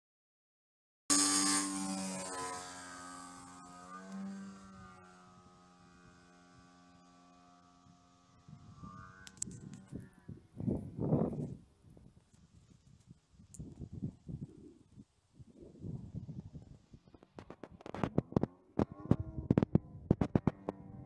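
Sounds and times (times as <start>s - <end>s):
model plane engine in flight: 1.1s - 21.0s.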